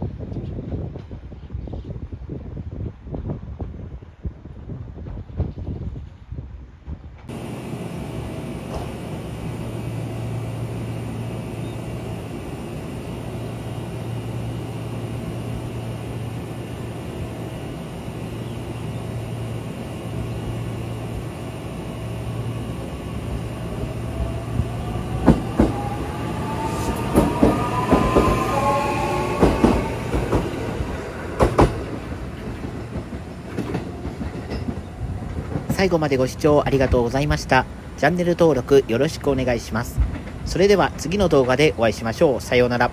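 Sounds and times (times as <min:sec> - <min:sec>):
train running noise: 0:02.7 - 0:42.9
train motor whine rising: 0:07.3 - 0:33.9
wheels clacking over rail joints: 0:29.3 - 0:35.9.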